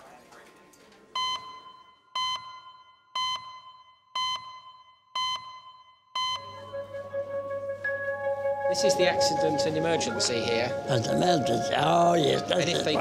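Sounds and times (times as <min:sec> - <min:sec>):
short electronic beeps: 0:01.2 - 0:06.7.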